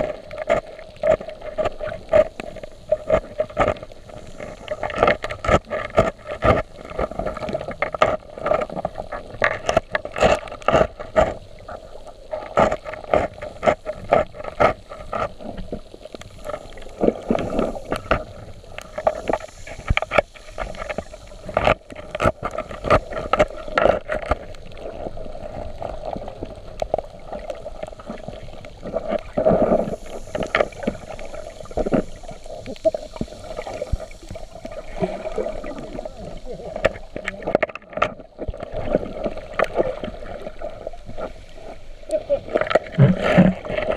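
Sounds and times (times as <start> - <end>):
underwater clicks and knocks: 0.0 - 43.9.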